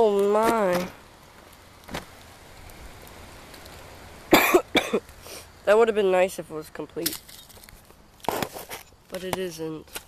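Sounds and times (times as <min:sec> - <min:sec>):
faint steady background noise: 0:00.0 - 0:10.0
person coughing: 0:04.3 - 0:05.0.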